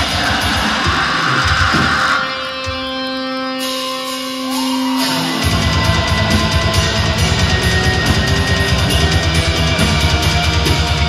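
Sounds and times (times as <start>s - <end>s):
rapid bass drum strokes: 0.0s - 2.8s, 5.3s - 11.0s
distorted electric guitars: 0.0s - 11.0s.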